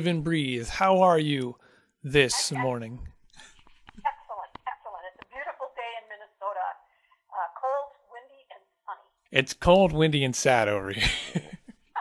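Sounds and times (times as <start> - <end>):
woman talking over telephone: 2.4 - 2.9, 4.0 - 9.2.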